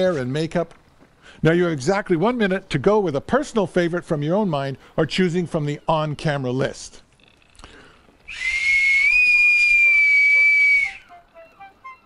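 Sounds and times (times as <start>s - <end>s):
brass whistle blast: 8.3s - 12.0s
faint music notes: 9.6s - 12.0s.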